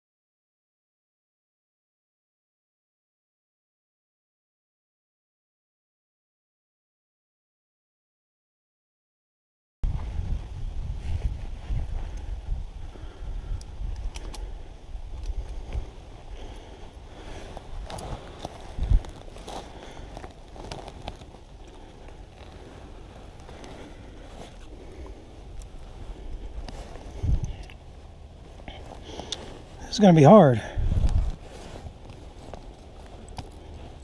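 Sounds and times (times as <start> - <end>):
low microphone rumble: 9.8 - 34.0
handling clicks and rustles: 13.6 - 34.0.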